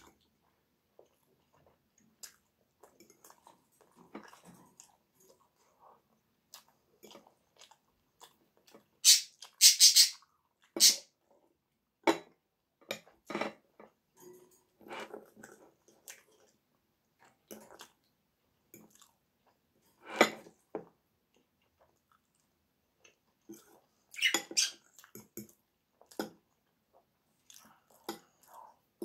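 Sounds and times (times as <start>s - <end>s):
chewing and mouth noises: 0.0s - 9.6s, 15.2s - 19.7s, 24.8s - 29.0s.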